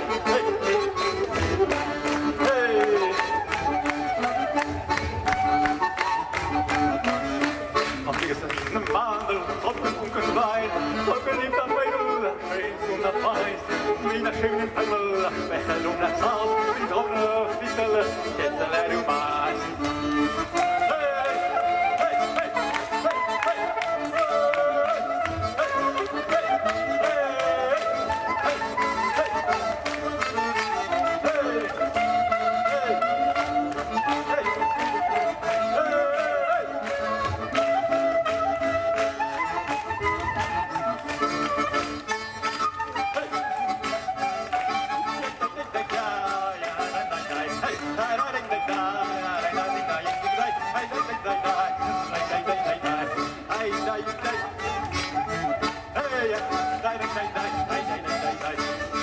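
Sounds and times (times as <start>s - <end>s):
saxophone melody: 0.0s - 8.1s, 18.4s - 45.7s
accordion chords: 0.0s - 59.0s.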